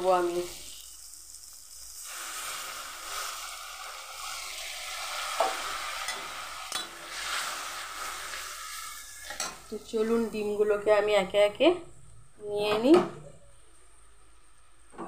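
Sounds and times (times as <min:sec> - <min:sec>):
paste sizzling in a wok: 0:00.0 - 0:10.6.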